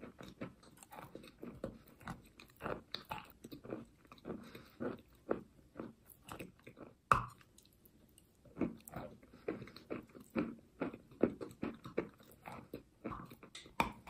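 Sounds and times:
chewing and crunching chalk: 0:00.0 - 0:14.0.

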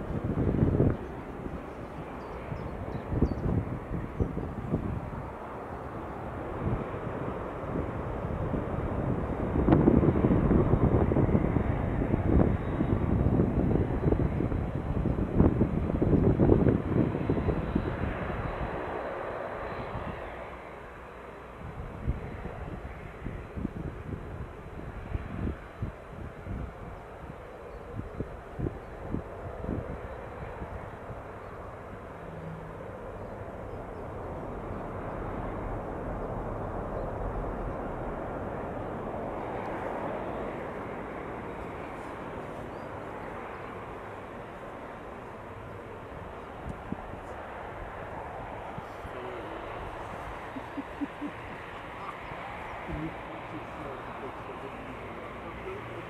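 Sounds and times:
jet engines roaring past: 0:00.0 - 0:56.0.

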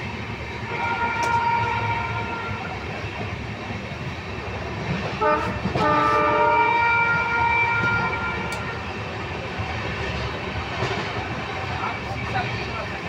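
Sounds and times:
rumble of moving train: 0:00.0 - 0:13.0
train horn blast: 0:00.7 - 0:02.7, 0:05.2 - 0:08.8.

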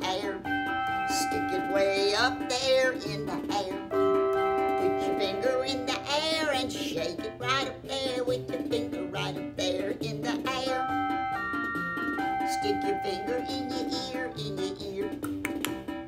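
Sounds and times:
electronic chords playing: 0:10.8 - 0:14.1.

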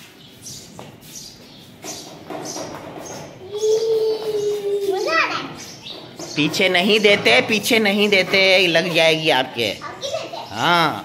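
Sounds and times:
child squealing: 0:03.4 - 0:05.4.

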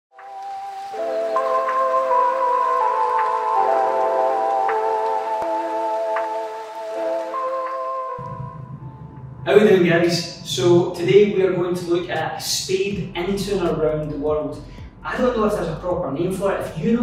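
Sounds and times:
sustained soft chords: 0:00.9 - 0:16.1.

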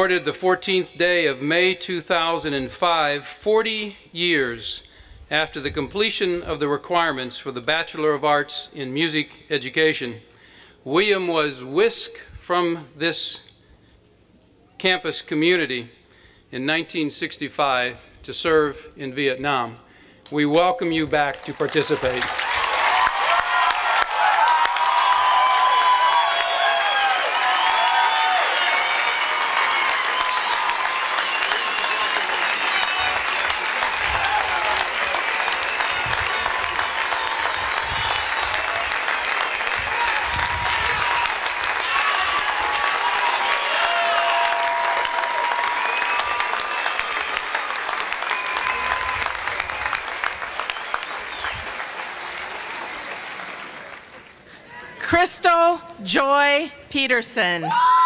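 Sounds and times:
large crowd applause: 0:21.2 - 0:54.4.

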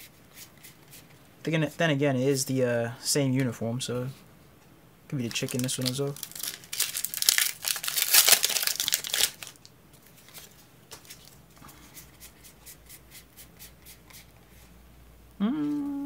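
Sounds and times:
foil wrapper tearing and crinkling: 0:05.3 - 0:09.7.

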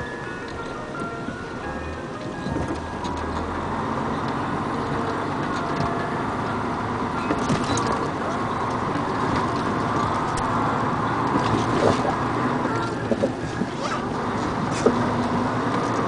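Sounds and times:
engine and tyre noise: 0:00.0 - 0:16.0.

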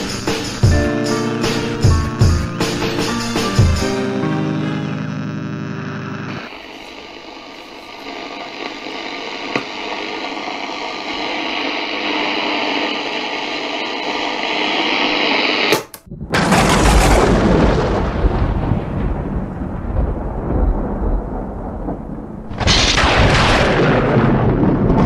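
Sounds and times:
held musical chord: 0:00.8 - 0:06.3
static hiss with faint hum: 0:04.6 - 0:15.8
loud noise with deep low end: 0:16.1 - 0:25.0.

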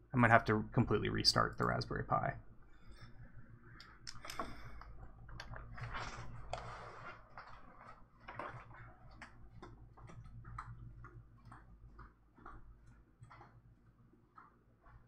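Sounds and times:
footsteps walking away: 0:07.2 - 0:15.0.

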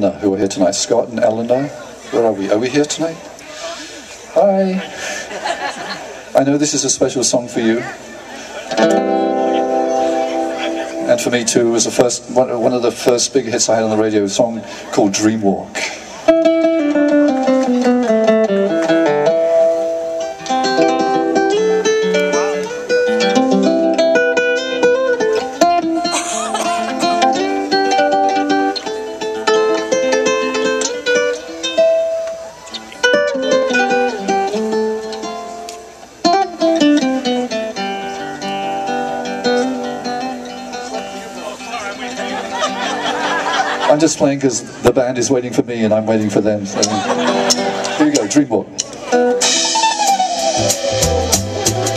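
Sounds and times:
nylon-string acoustic guitar: 0:06.4 - 0:51.9.

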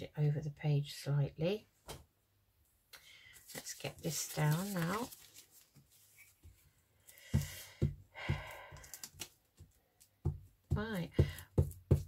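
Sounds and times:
paper rustling: 0:03.3 - 0:07.6.

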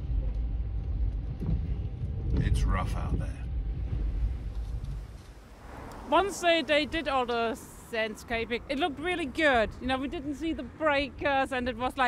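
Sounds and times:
wind noise: 0:00.0 - 0:12.0.

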